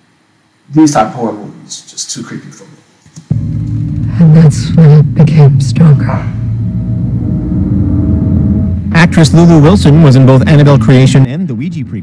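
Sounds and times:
faint held tone: 3.3s - 11.2s
loud low rumble: 3.3s - 12.0s.

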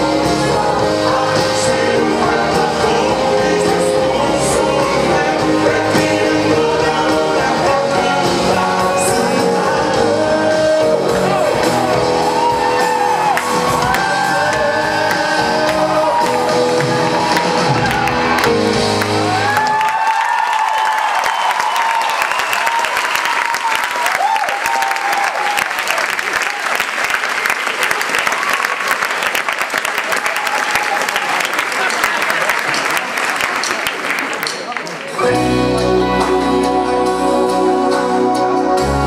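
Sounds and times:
live band with singing: 0.0s - 19.9s, 34.4s - 39.0s
audience cheering and shouting: 0.0s - 29.1s, 29.8s - 37.4s
audience applauding: 11.2s - 35.5s.

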